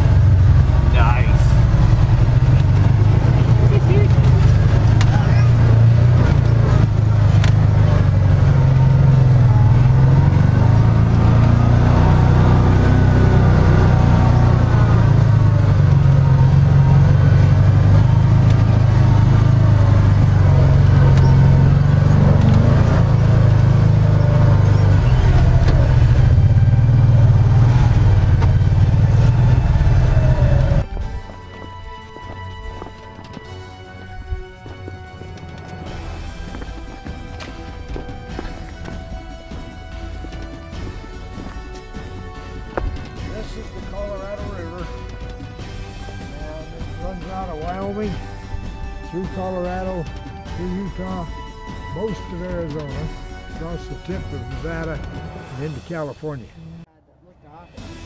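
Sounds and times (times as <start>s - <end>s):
engine droning under load: 0.0s - 58.0s.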